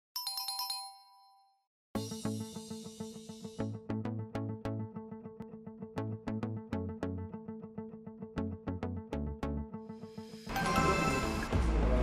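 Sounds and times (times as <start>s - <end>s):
bell-like chime jingle: 0.2s - 1.6s, 10.5s - 11.5s.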